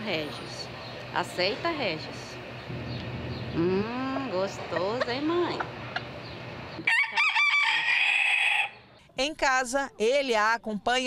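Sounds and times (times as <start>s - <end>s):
rooster crowing: 6.8s - 8.8s.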